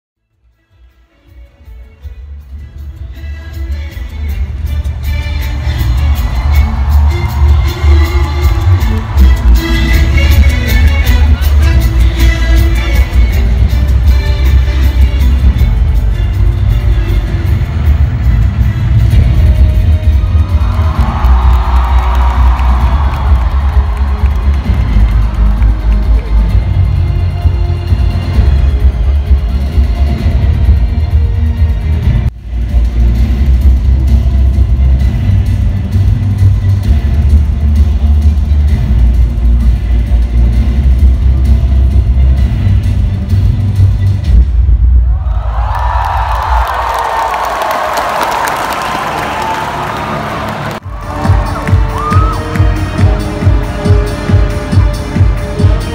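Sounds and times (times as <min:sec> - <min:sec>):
concert music with pulsing bass: 0:00.3 - 0:45.0, 0:49.7 - 0:55.9
crowd cheering: 0:05.6 - 0:11.0, 0:20.0 - 0:27.0, 0:45.0 - 0:54.9.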